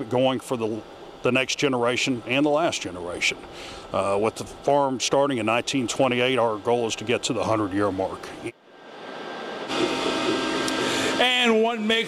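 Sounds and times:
milking machinery humming: 0.0 - 12.0.

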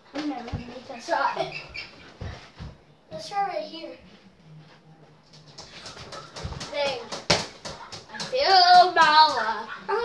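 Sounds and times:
child's loud wordless vocal: 8.3 - 10.0.

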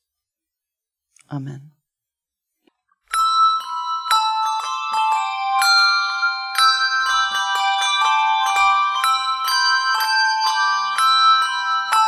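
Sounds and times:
handbell chords ringing: 3.1 - 12.0.

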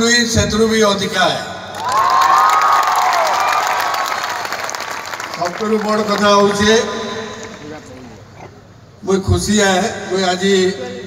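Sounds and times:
audience clapping: 1.7 - 6.8
crowd cheering: 1.7 - 7.7.

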